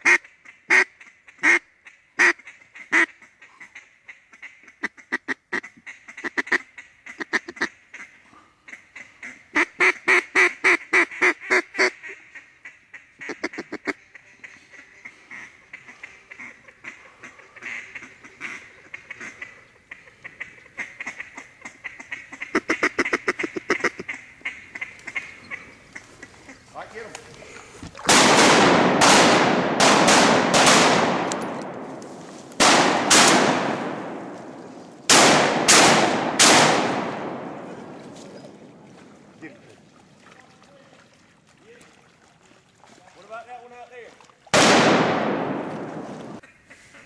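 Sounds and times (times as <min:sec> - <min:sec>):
duck call quacks: 0:00.0 - 0:27.0, 0:46.4 - 0:47.0.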